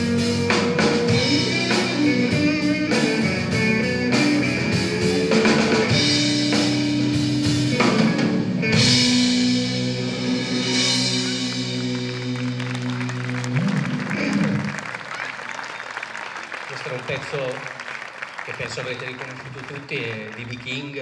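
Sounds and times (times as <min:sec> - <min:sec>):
sustained electric guitar notes: 0:00.0 - 0:15.1
blues-rock band playing: 0:00.0 - 0:16.4.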